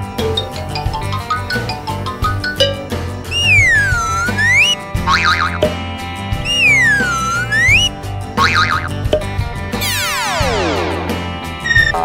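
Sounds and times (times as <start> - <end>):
cheerful cartoon music: 0.0 - 12.0
wobbling boing: 2.6 - 5.8, 6.5 - 9.3
falling slide whistle: 3.3 - 4.8, 6.5 - 7.9
whistle-like swoops: 3.3 - 4.8, 6.4 - 7.9.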